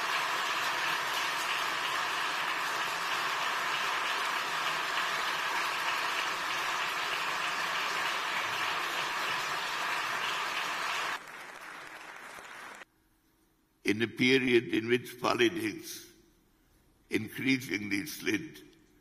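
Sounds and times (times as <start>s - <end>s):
audience applauding: 0.0s - 12.9s.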